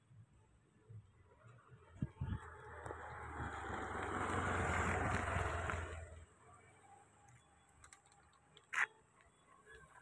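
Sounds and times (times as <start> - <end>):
vehicle passing by: 2.1 - 6.3.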